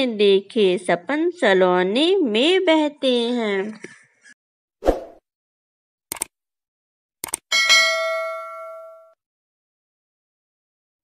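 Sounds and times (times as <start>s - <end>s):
notification bell ding: 7.5s - 9.2s.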